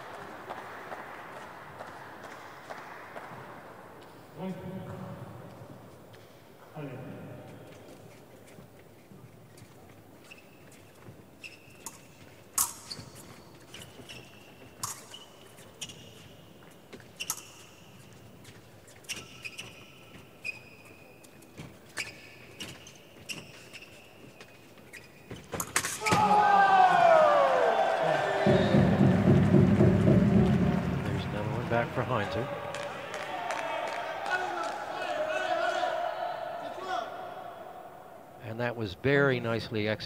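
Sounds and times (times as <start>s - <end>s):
shoes squeaking: 7.5s - 26.8s
shouting and cheering: 26.0s - 38.4s.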